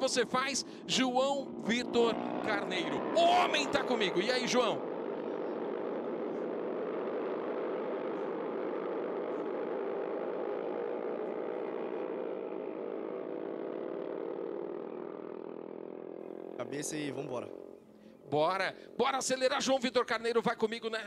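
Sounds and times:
racing motorcycle engines droning: 0:00.0 - 0:21.0.

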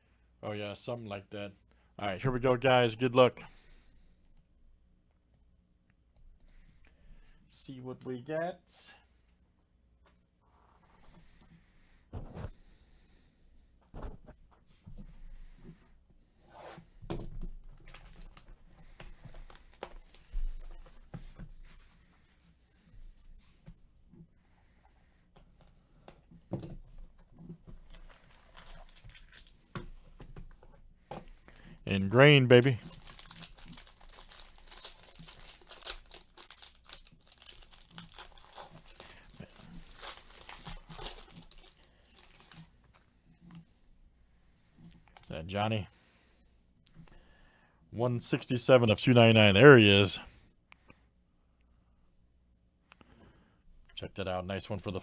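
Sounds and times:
packaging rustling and tearing: 0:17.6 - 0:21.8, 0:27.7 - 0:29.6, 0:32.5 - 0:43.0.

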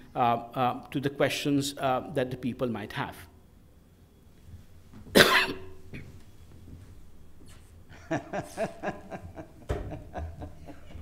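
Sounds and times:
person coughing: 0:05.1 - 0:06.1.

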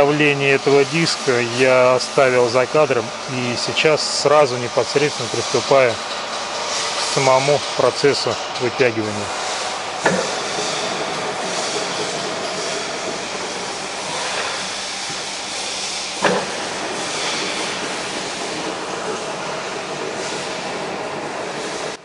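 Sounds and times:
metal lathe running: 0:00.0 - 0:22.0.

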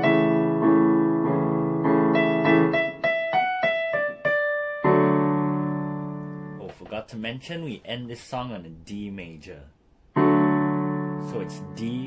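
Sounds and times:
digital piano playing: 0:00.0 - 0:06.8, 0:10.1 - 0:12.0.

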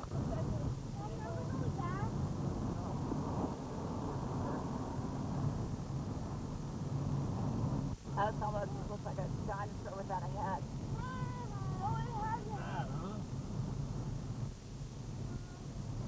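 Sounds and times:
vehicle engine and tyres drone: 0:01.3 - 0:08.6.

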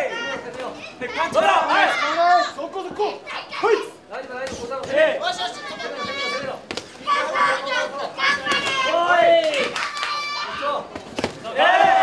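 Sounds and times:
high-pitched crowd shouts: 0:07.0 - 0:10.8, 0:11.4 - 0:12.0.

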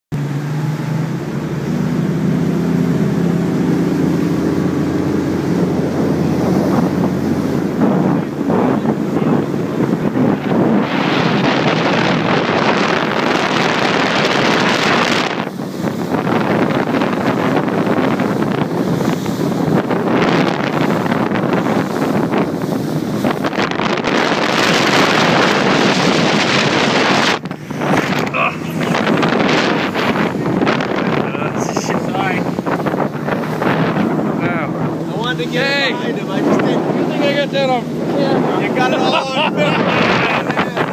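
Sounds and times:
motorboat engine drone: 0:00.1 - 0:40.9
water rushing past: 0:00.2 - 0:40.9
wind buffeting microphone: 0:00.2 - 0:40.9.

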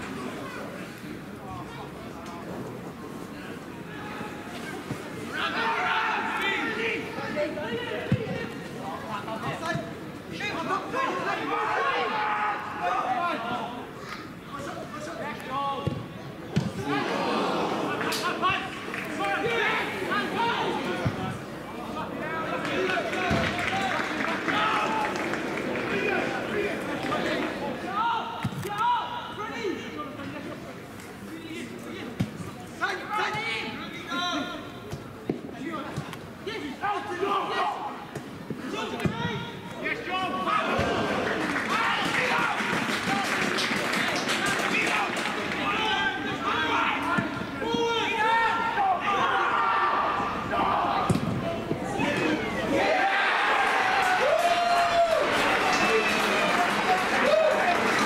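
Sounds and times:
footballers shouting: 0:03.8 - 0:14.0, 0:16.5 - 0:30.0, 0:35.8 - 0:58.0.

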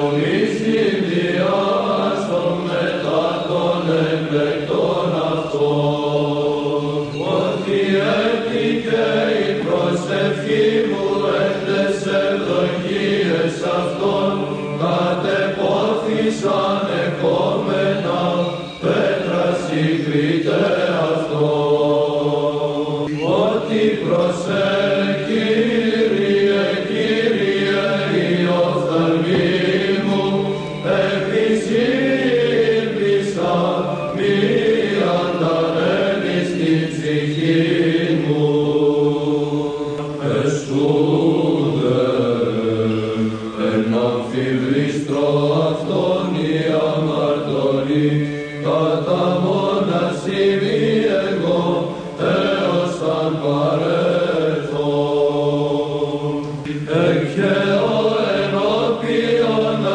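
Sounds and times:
chant melody sung: 0:00.0 - 0:59.9
held vocal drone: 0:00.0 - 0:59.9.

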